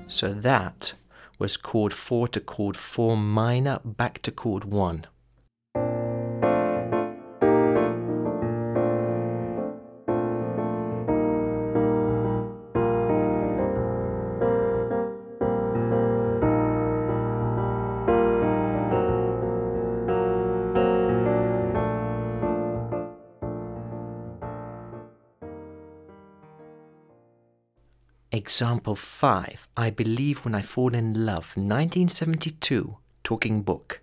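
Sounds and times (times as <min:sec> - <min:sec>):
piano chords: 0:00.0 - 0:00.9, 0:05.8 - 0:27.6.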